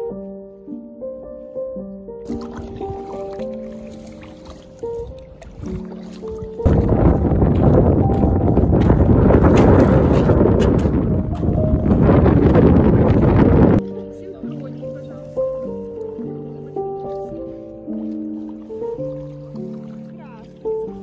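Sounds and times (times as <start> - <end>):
soft background music: 0.0 - 21.0
wind buffeting microphone: 4.8 - 13.9.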